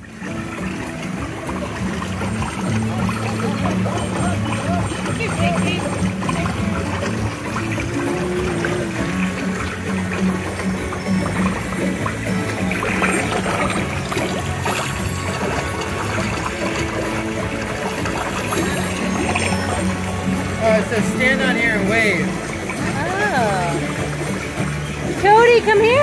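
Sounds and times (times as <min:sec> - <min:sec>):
background music with low drone: 0:00.0 - 0:26.0
water trickling down rocks: 0:00.0 - 0:26.0.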